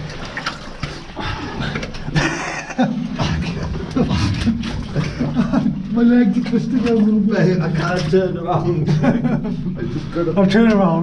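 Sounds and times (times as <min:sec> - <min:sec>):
splashing in muddy water: 0:00.0 - 0:09.0
person laughing: 0:02.1 - 0:05.9, 0:08.7 - 0:10.1.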